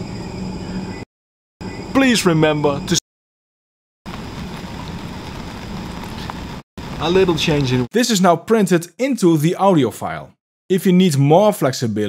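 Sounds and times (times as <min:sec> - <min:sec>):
rain-like hiss: 0:04.1 - 0:07.9.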